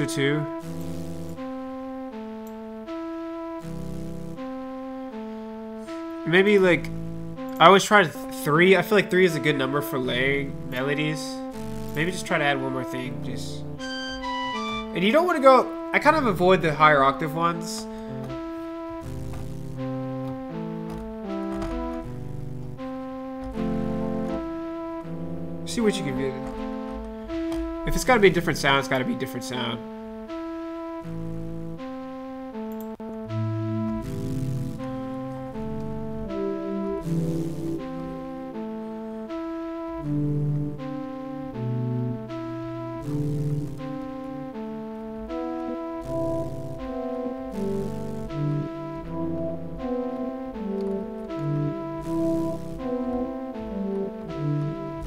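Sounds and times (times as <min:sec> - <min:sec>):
low synth bass: 0:00.0 - 0:07.6, 0:10.0 - 0:29.2, 0:29.8 - 0:55.0
synthesized flute melody: 0:00.0 - 0:55.0.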